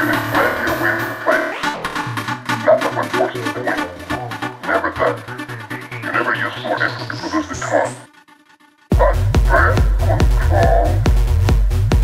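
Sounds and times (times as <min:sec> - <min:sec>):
synth stabs: 0:00.0 - 0:04.7
techno kick drum and bass: 0:08.9 - 0:12.0.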